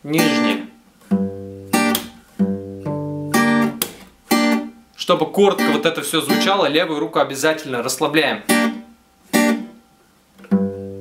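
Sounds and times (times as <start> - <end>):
acoustic guitar picked slowly: 0.0 - 5.0, 8.4 - 11.0.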